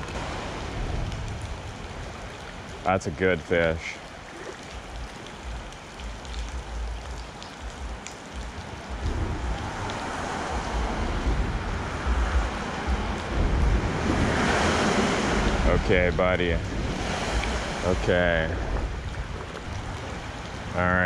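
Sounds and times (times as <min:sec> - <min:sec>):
creek water flowing: 0:00.0 - 0:21.0
rain falling on water: 0:00.0 - 0:21.0
low rumble: 0:08.9 - 0:20.4.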